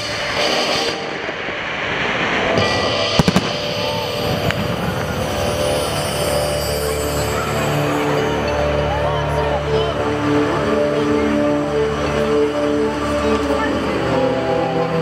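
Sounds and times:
fireworks crackling and bursting: 0:00.0 - 0:07.8
sharp firework bangs: 0:02.0 - 0:05.8.

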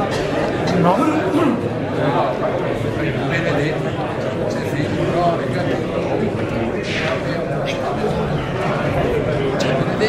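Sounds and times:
crowd chattering: 0:00.0 - 0:10.0.

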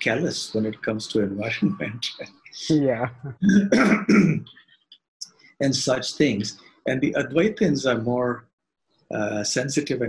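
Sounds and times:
man clearing his throat: 0:03.5 - 0:04.4.

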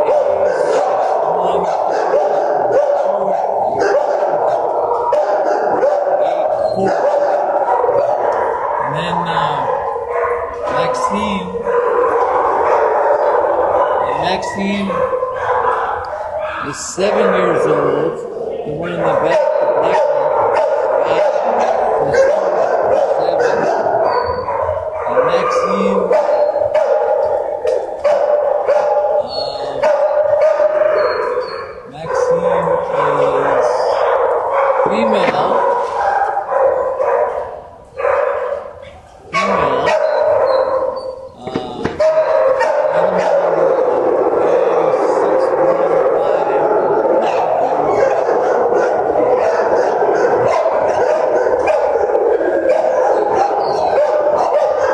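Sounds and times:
dogs barking and yipping: 0:00.0 - 0:54.9.

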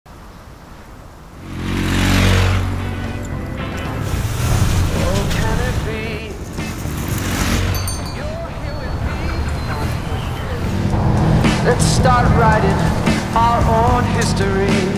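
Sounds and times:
motorcycle engines running: 0:01.3 - 0:14.9
rushing whoosh: 0:01.4 - 0:13.8
background music: 0:01.4 - 0:14.9.

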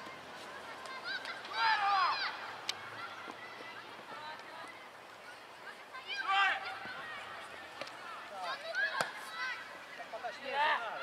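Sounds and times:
children shouting: 0:00.0 - 0:09.8.

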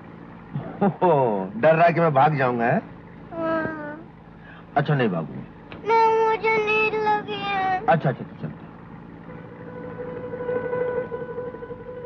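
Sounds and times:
held note of background score: 0:09.2 - 0:12.0.

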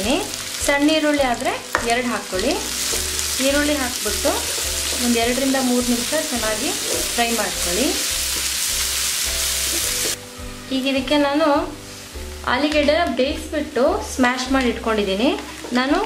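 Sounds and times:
food sizzling in oil: 0:00.0 - 0:16.0
spatula stirring in pan: 0:04.1 - 0:10.2.

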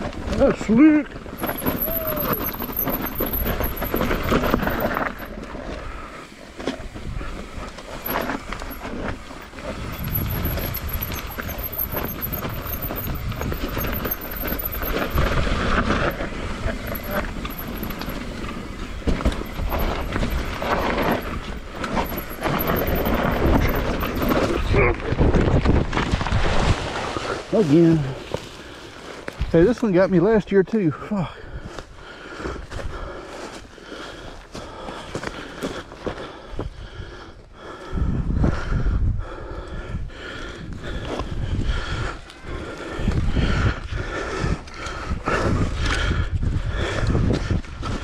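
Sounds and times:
bike rattling over rough ground: 0:00.0 - 0:30.9, 0:40.3 - 0:48.0
bike crash: 0:01.3 - 0:05.3
bicycle freehub ticking: 0:01.3 - 0:24.6
wind on microphone: 0:09.7 - 0:16.8, 0:19.1 - 0:27.0, 0:37.9 - 0:48.0.

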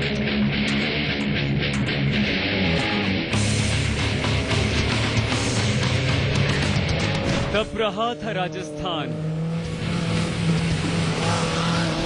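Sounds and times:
rally car engine running hard: 0:00.0 - 0:12.0.

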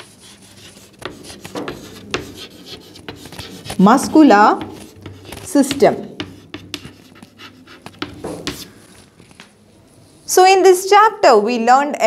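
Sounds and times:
chalk tapping and scraping on chalkboard: 0:00.0 - 0:09.1.

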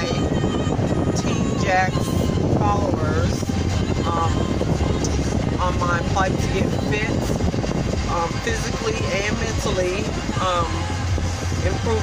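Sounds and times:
car road and engine rumble: 0:00.0 - 0:12.0
woman talking: 0:04.0 - 0:04.6, 0:05.6 - 0:07.3, 0:11.6 - 0:12.0.

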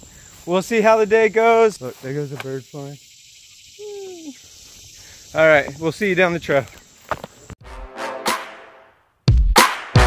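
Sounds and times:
insects buzzing and trilling: 0:00.0 - 0:07.6.

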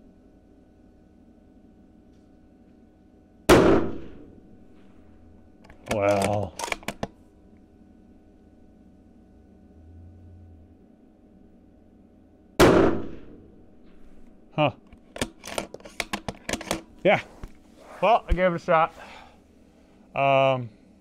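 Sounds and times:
rifle shot: 0:03.5 - 0:04.4, 0:12.6 - 0:14.1
sharp clicks: 0:05.6 - 0:07.1.

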